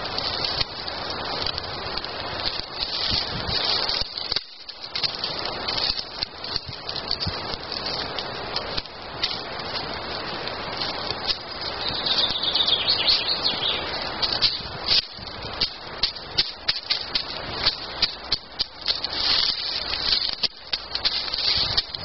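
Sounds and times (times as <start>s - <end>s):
wood fire crackling and popping: 0.0s - 22.0s.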